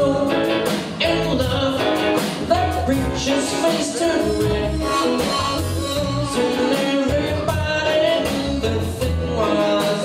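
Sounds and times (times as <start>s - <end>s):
distant live band playing: 0.0s - 10.0s.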